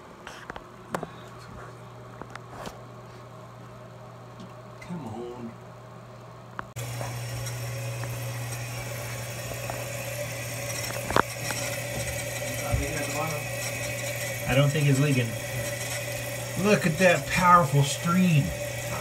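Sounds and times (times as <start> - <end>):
water rushing into toilet tank: 6.8 - 19.0.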